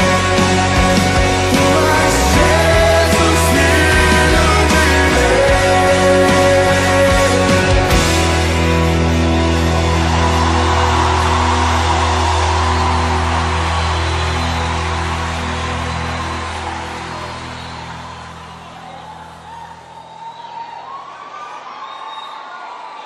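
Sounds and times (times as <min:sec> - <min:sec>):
crowd cheering: 0:00.0 - 0:23.0.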